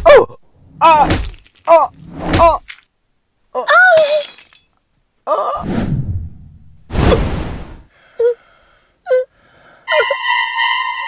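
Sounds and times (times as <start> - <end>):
glass shattering: 4.0 - 4.8.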